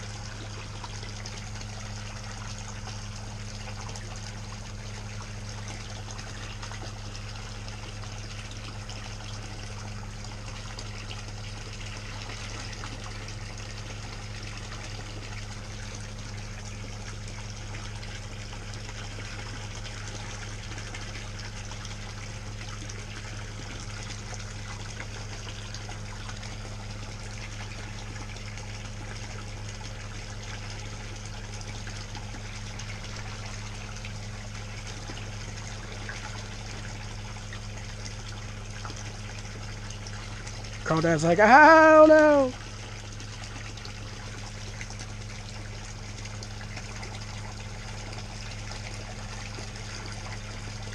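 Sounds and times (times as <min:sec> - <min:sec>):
steady low hum: 0:00.0 - 0:50.9
water pouring and splashing: 0:00.0 - 0:50.9.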